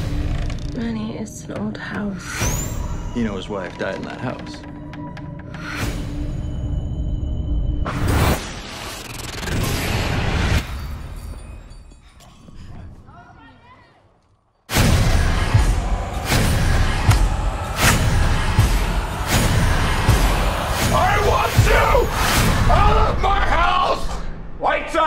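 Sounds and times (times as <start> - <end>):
loud pounding percussion: 14.7 - 23.2.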